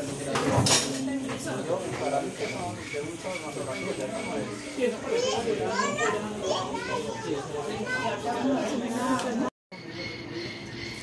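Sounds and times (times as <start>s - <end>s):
people talking: 0.0s - 10.5s
children chattering and calling out: 1.0s - 11.0s.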